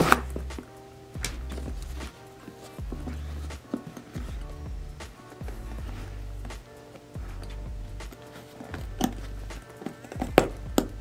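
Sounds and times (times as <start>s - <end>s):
bass line: 0.0s - 0.6s, 1.2s - 2.1s, 2.8s - 3.6s, 4.2s - 6.6s, 7.2s - 8.2s, 8.8s - 9.6s, 10.2s - 11.0s.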